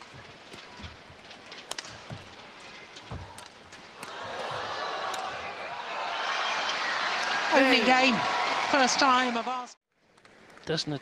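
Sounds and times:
racket striking shuttlecock: 0:03.1 - 0:05.4
crowd cheering and applauding: 0:04.0 - 0:09.8.

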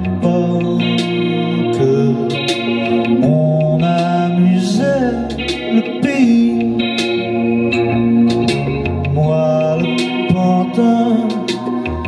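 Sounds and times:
man singing: 0:00.0 - 0:07.3, 0:09.0 - 0:12.0
electric guitar: 0:00.0 - 0:12.0.

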